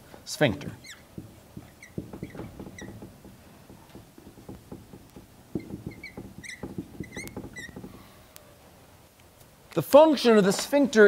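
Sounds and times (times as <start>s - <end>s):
marker squeaks: 0.6s - 8.5s
marker scratching on whiteboard: 0.8s - 3.1s, 4.2s - 8.0s.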